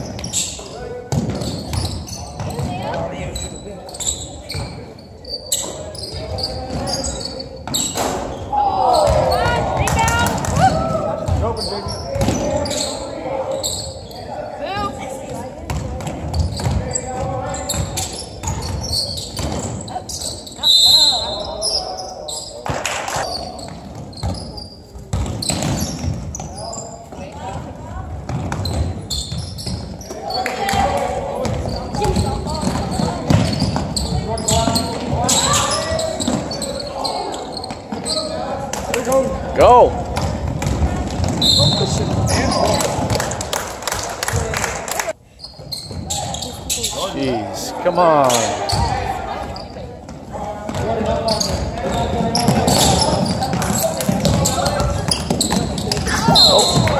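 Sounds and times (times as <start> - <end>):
voices echoing in hall: 0.0 - 56.9
basketball bouncing on hardwood floor: 40.0 - 41.4, 50.7 - 56.9.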